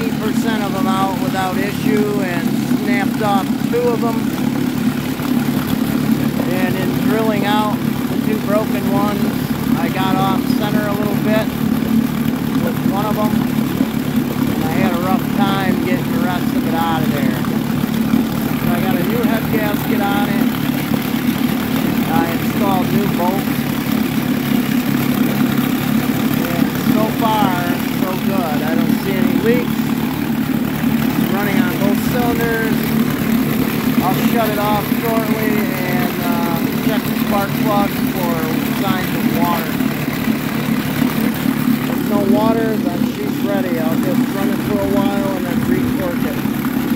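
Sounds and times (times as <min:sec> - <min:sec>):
outboard motor running: 0:00.0 - 0:46.9.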